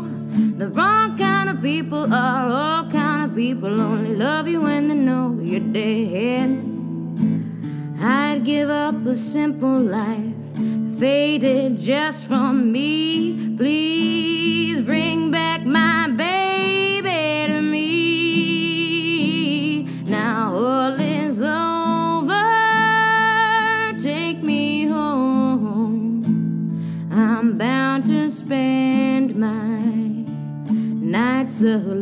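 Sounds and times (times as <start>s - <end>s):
woman singing with vibrato: 0.0s - 6.9s, 7.9s - 26.4s, 27.0s - 32.0s
acoustic guitar: 0.0s - 32.0s.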